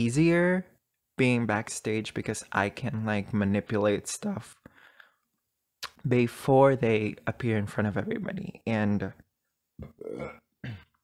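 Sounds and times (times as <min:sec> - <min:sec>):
woman burping: 0:09.8 - 0:11.0.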